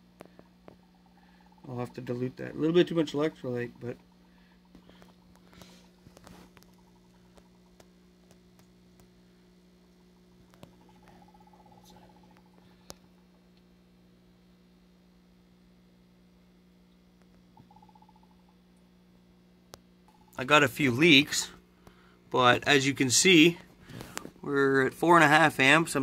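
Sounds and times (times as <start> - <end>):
faint electrical hum: 0.0 - 26.0.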